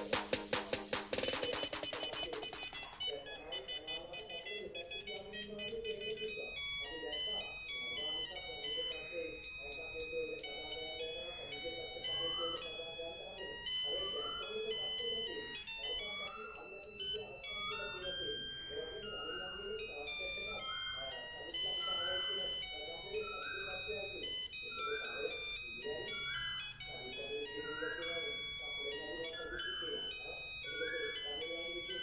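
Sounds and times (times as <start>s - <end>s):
music beat: 0.0s - 9.0s
high electronic melody: 0.0s - 32.0s.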